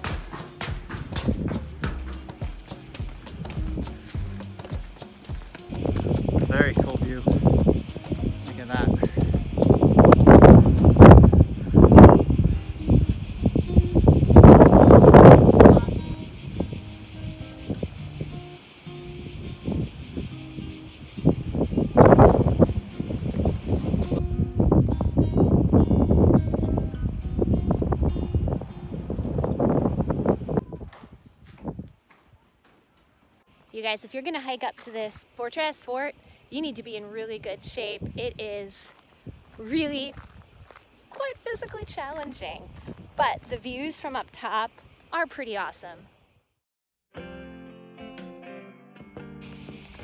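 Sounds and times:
wind buffeting microphone: 0.0 - 2.2, 3.0 - 4.4, 5.6 - 18.4, 19.0 - 32.0, 37.3 - 44.0
cicada chorus drone: 0.0 - 46.6, 49.4 - 50.0.

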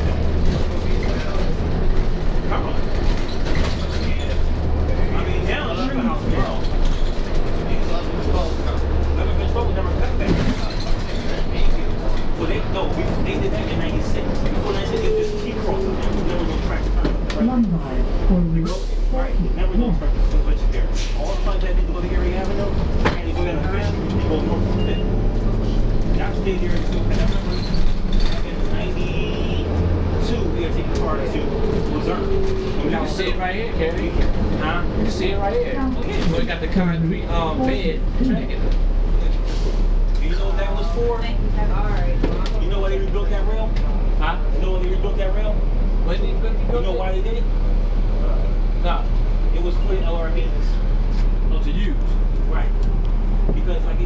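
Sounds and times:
indistinct voices: 0.0 - 39.6
bus engine running: 0.0 - 54.0.

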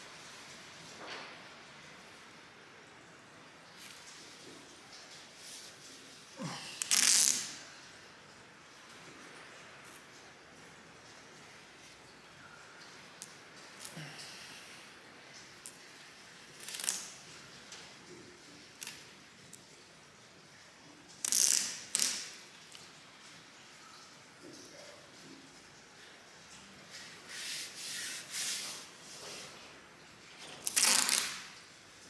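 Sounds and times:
masking tape ripping off roll: 6.4 - 7.6, 16.5 - 17.2, 21.2 - 22.4, 30.6 - 31.6.

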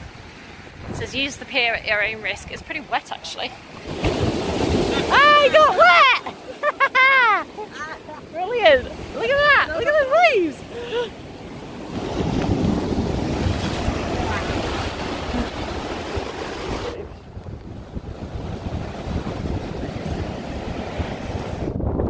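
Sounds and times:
wind buffeting microphone: 0.0 - 3.0, 8.3 - 22.0
waves breaking over rocks: 0.0 - 22.0
surf rolling onto sandy beach: 3.8 - 21.8.

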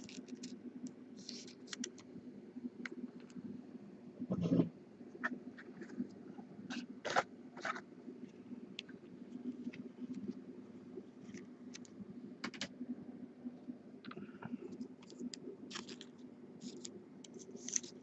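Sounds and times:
steady low hum: 0.0 - 18.0
cards and plastic sleeves handled: 15.0 - 18.0.

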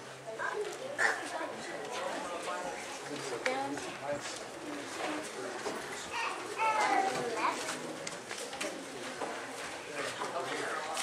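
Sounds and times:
high-pitched child's voice: 6.1 - 7.7.

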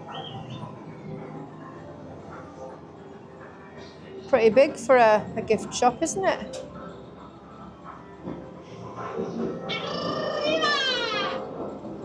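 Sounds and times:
muffled arcade machines: 0.0 - 12.0
meow-like game sound effect: 9.7 - 11.4.

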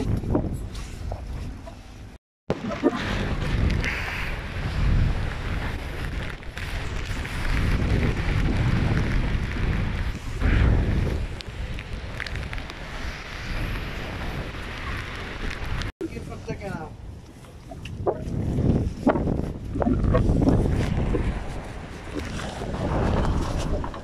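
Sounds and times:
wind buffeting microphone: 0.0 - 1.8, 2.5 - 24.0.

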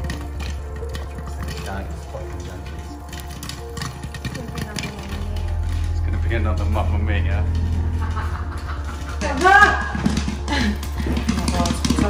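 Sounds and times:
popcorn crackling in hot oil: 0.0 - 6.2
music playing: 0.0 - 12.0.

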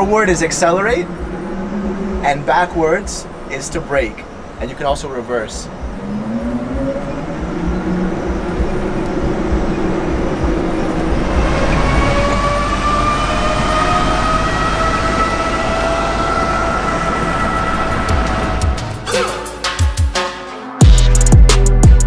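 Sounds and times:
whining tones rising in pitch: 0.0 - 4.6, 5.4 - 19.6
electric car hum: 0.0 - 19.1.

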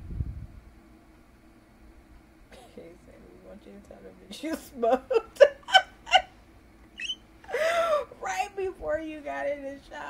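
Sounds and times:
woman laughing: 4.5 - 6.4, 7.0 - 8.1
short squeak: 7.0 - 7.2.

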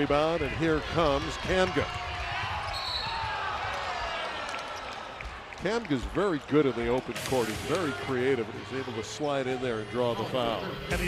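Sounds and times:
crowd noise: 0.0 - 11.0
referee's whistle: 2.7 - 3.3.

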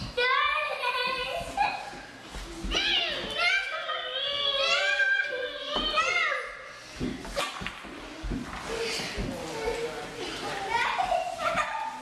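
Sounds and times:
children chattering and playing: 0.0 - 12.0.

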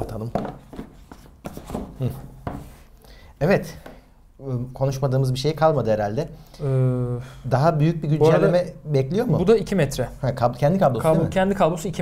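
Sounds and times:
box knocking on table: 0.3 - 2.7.

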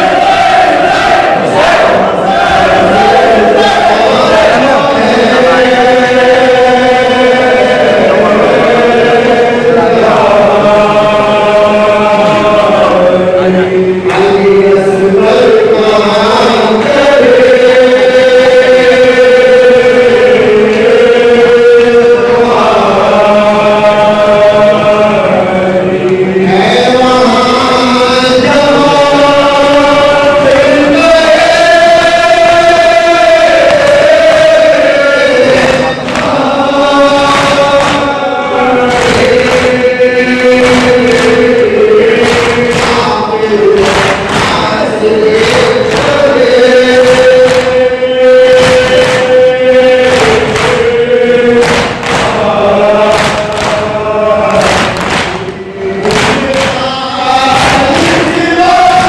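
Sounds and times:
men chanting together: 0.0 - 59.0.

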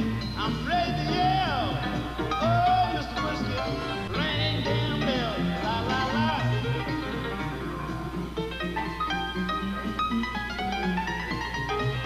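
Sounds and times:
jazz piano: 0.0 - 12.0.

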